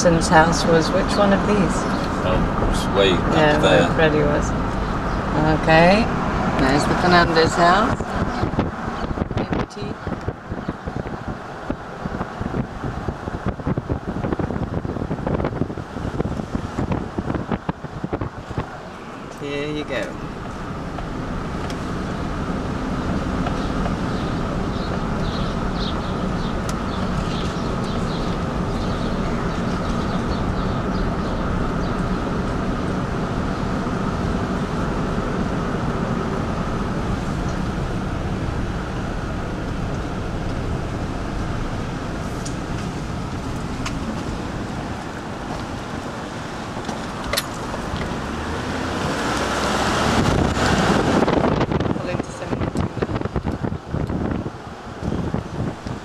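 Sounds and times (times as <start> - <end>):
car engine hum: 0.0 - 56.0
tyre and road noise: 0.0 - 56.0
wind noise rushing: 0.4 - 19.3, 19.9 - 56.0.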